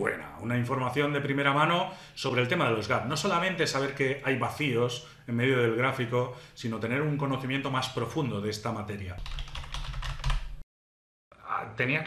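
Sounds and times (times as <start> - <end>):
typing on computer keyboard: 9.2 - 10.6.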